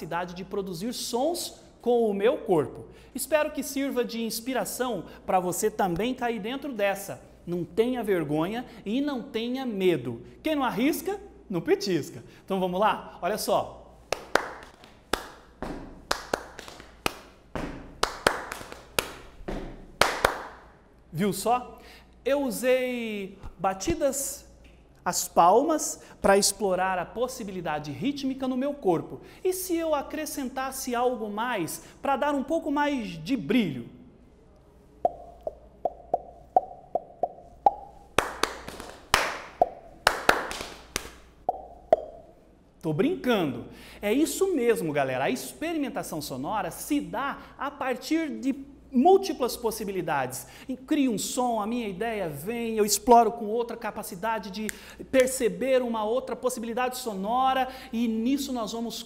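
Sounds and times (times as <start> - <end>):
hand claps: 14.1 - 20.7, 37.7 - 42.2
sharp pitched body percussion clicks: 35.1 - 42.3.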